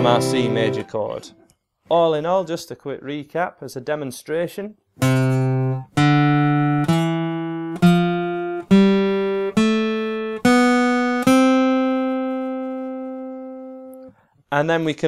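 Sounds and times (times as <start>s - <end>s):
acoustic guitar scale: 0.0s - 15.0s.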